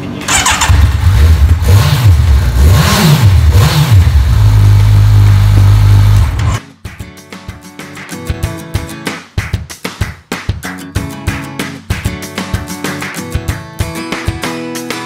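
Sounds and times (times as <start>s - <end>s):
motorcycle engine revving: 0.2s - 6.6s
guitar music: 5.2s - 15.0s.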